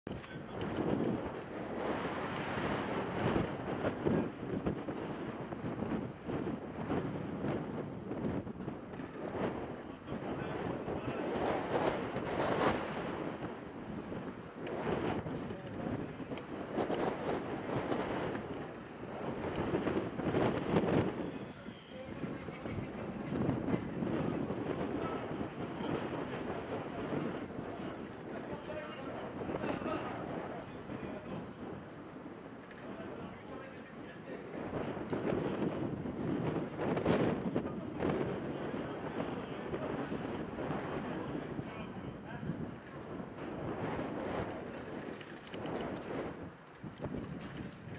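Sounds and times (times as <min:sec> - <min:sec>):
wind buffeting microphone: 0:00.0 - 0:47.9
faint distant voices: 0:20.8 - 0:35.0.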